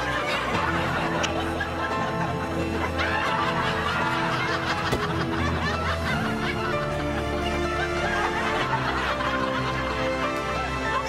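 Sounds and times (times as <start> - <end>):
background music: 0.0 - 11.0
laugh track chuckling: 0.0 - 11.0.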